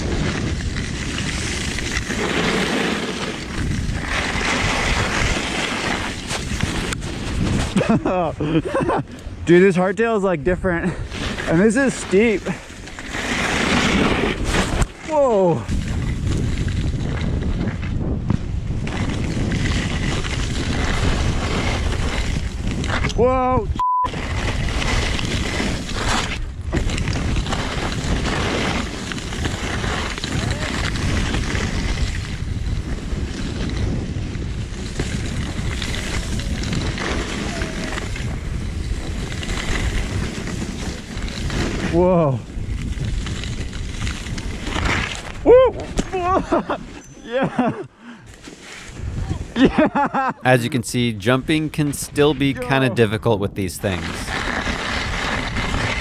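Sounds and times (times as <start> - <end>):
skis sliding over snow: 0.0 - 10.0, 10.6 - 23.1, 24.1 - 47.7, 48.3 - 56.0
wordless vocal whoops: 45.4 - 46.4.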